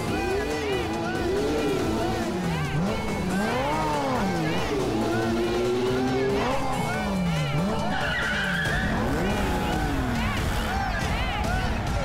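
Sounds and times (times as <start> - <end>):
motorcycle engines revving: 0.0 - 12.0.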